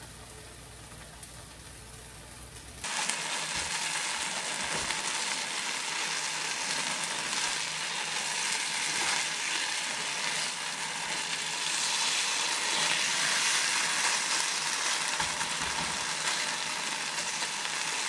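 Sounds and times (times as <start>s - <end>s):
food sizzling in a frying pan: 0.0s - 18.0s
spatula stirring: 8.3s - 16.5s.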